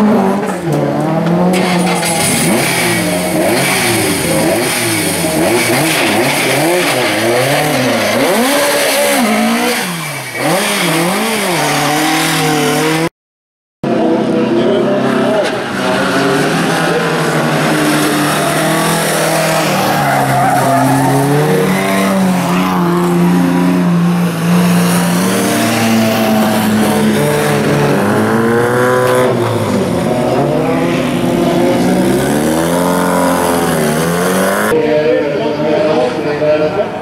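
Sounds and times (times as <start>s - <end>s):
racing car engines at high revs: 0.0s - 13.1s, 13.9s - 34.8s.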